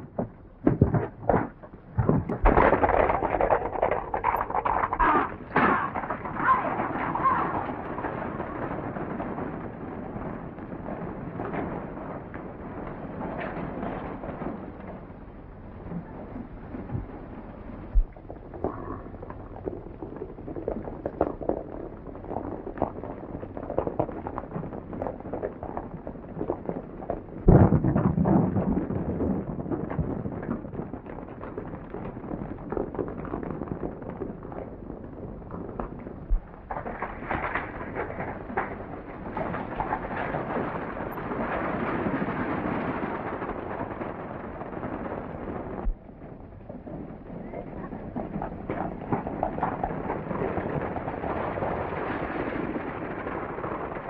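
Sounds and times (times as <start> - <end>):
horses galloping on dirt: 0.0 - 54.0
wagon wheels rumbling: 0.0 - 54.0.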